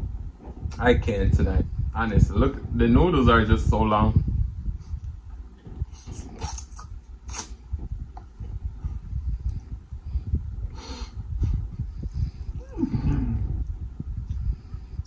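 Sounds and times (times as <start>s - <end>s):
falling hum: 0.0s - 15.0s
slurping noodles: 5.8s - 7.6s
wet chewing: 5.8s - 7.6s.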